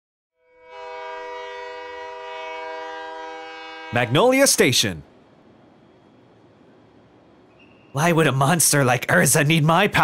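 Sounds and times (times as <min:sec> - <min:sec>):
train whistle chord: 0:00.4 - 0:04.6
person speaking: 0:04.0 - 0:05.0, 0:08.0 - 0:10.0.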